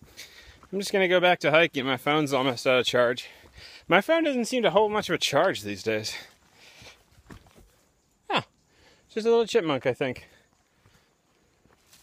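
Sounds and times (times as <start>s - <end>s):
faint rustle: 10.3s - 12.0s.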